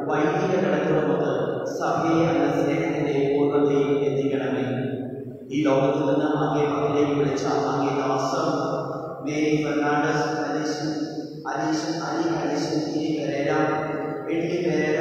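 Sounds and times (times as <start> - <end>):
man chanting a prayer: 0.0 - 4.8, 5.5 - 15.0.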